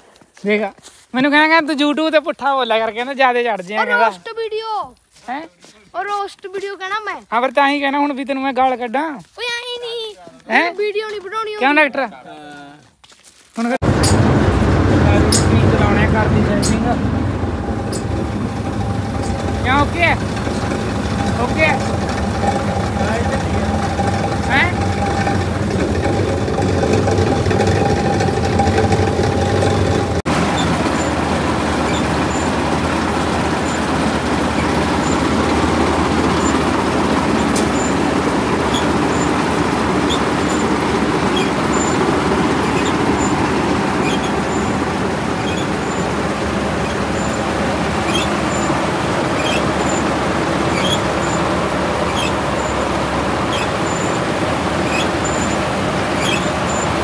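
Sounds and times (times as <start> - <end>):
combine harvester harvesting: 13.8 - 57.0
diesel engine humming: 13.8 - 57.0.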